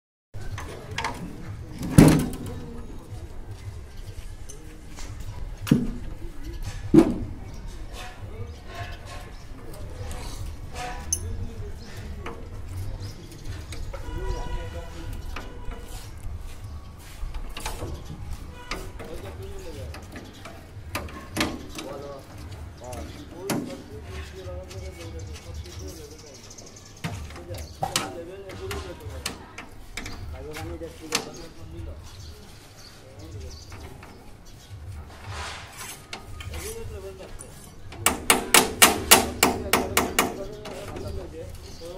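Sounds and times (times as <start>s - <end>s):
faint voices: 0.4s - 41.9s.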